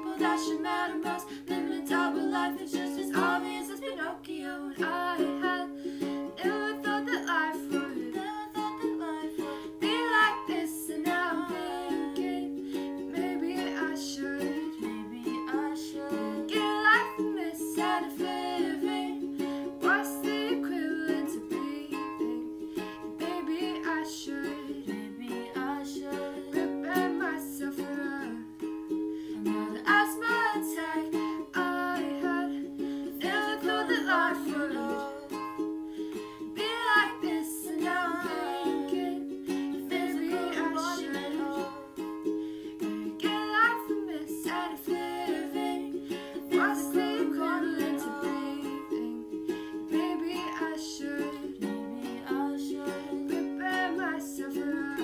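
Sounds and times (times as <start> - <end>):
young women singing: 0.0 - 28.5, 29.4 - 35.6, 36.2 - 42.2, 42.8 - 55.0
ukulele strumming: 0.0 - 55.0.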